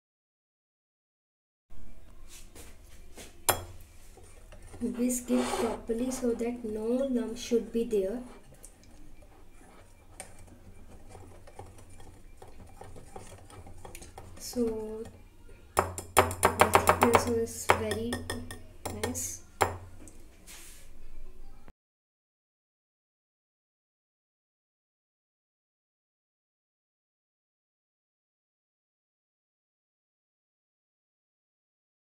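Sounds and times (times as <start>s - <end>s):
whisk beating batter in glass bowl: 4.1s - 15.2s
whisk clinking against glass: 9.2s - 15.1s.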